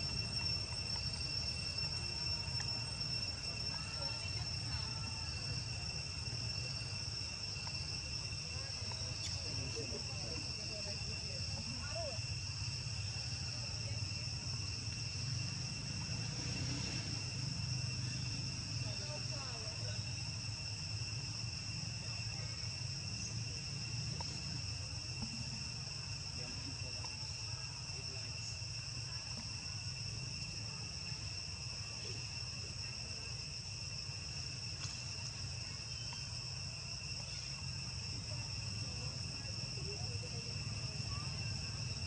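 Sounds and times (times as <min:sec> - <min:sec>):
high-pitched insect drone: 0:00.0 - 0:42.0.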